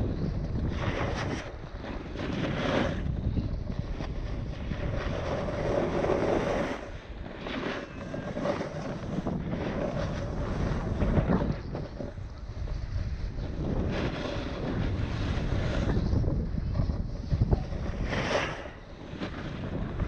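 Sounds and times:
skis scraping on snow: 0:00.0 - 0:20.0
wind buffeting microphone: 0:00.0 - 0:20.0.

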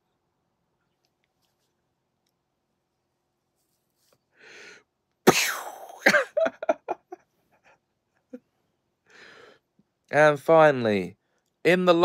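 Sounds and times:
man breathing in: 0:04.3 - 0:04.9, 0:09.0 - 0:09.7.

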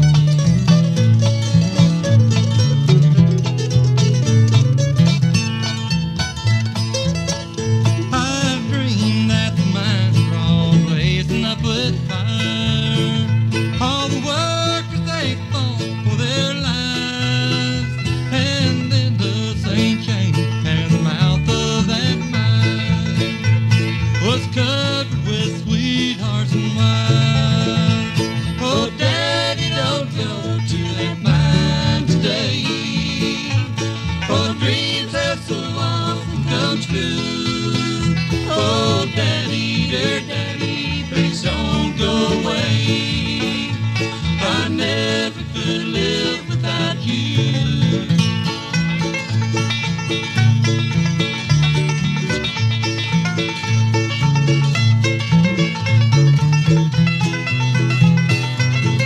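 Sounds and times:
banjo: 0:00.0 - 0:59.0
mandolin: 0:00.0 - 0:59.0
rhythm guitar: 0:00.0 - 0:59.0
upright bass: 0:00.0 - 0:59.0.

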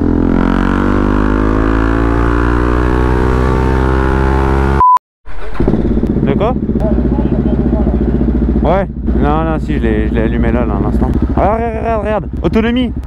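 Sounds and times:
motorcycle engine accelerating: 0:00.0 - 0:04.8, 0:05.4 - 0:13.0
short high beep: 0:04.8 - 0:05.0.

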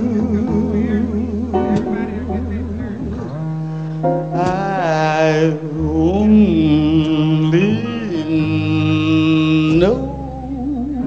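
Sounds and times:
low bass notes: 0:00.0 - 0:11.0.

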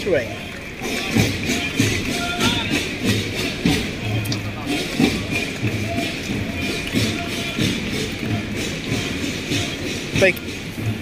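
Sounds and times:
parade marching music: 0:00.0 - 0:11.0.

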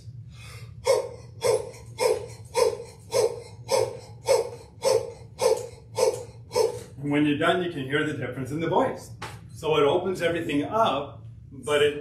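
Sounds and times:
man breathing forcefully: 0:00.2 - 0:07.0.

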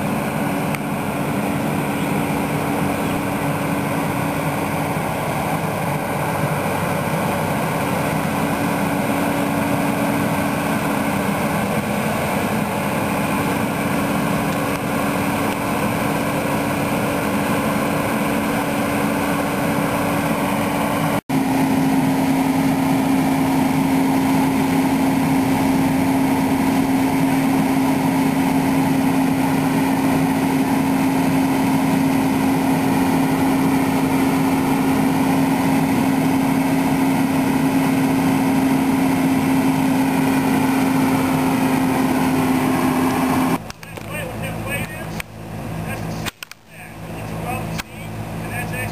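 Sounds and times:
excavator diesel engine running: 0:00.0 - 0:48.9.

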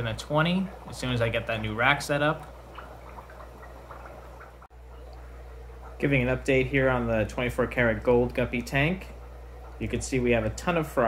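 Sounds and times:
aquarium equipment hum: 0:00.0 - 0:11.0
water trickling and dripping: 0:00.0 - 0:11.0.

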